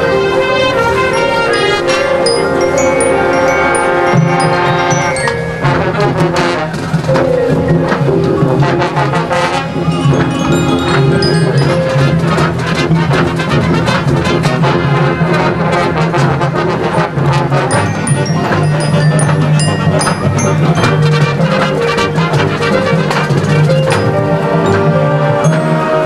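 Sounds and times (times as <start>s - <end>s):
brass holding chords: 0.0s - 26.0s
drumline strokes: 0.0s - 26.0s.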